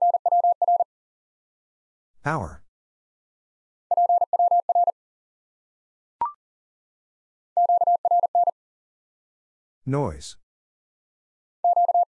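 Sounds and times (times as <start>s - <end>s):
morse code beeps: 0.0s - 0.8s, 3.9s - 4.9s, 7.6s - 8.5s, 11.6s - 12.0s.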